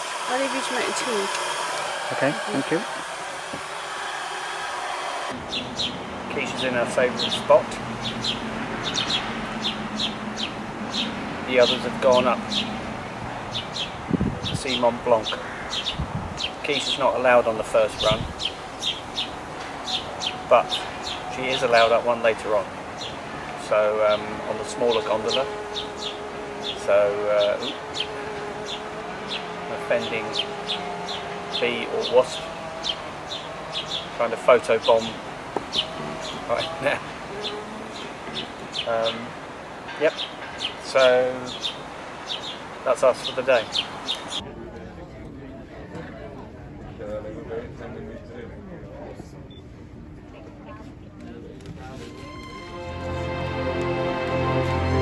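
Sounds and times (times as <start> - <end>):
small birds chirping: 5.3 - 44.4.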